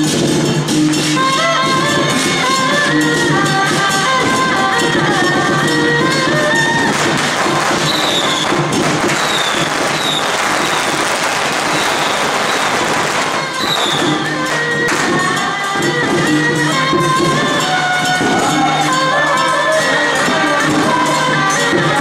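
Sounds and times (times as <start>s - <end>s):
procession music: 0.9s - 22.0s
firecrackers crackling: 3.8s - 18.5s.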